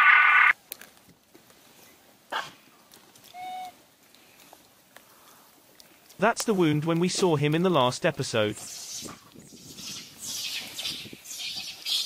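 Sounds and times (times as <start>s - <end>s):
macaque call: 8.6s - 12.0s.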